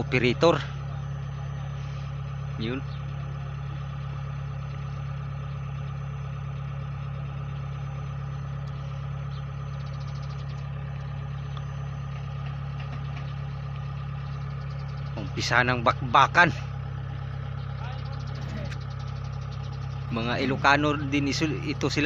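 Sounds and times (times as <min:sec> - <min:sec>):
harvester engine idling: 0:00.0 - 0:22.0.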